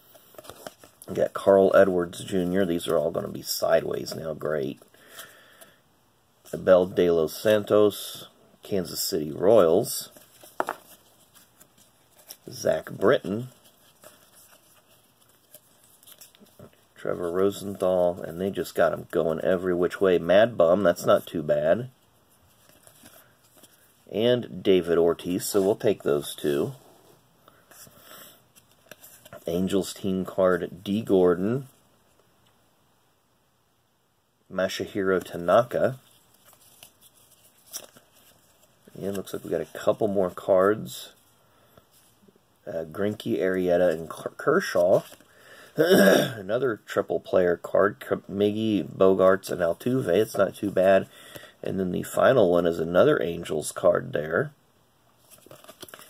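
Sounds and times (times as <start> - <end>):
cards rustling and flicking: 0.1 - 5.7, 8.8 - 26.8, 27.6 - 31.7, 34.7 - 42.2, 42.9 - 45.4, 55.2 - 56.0.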